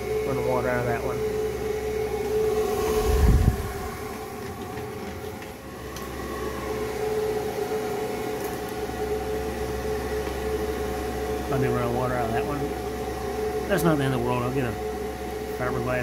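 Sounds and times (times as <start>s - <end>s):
fan and water pump humming: 0.0s - 16.0s.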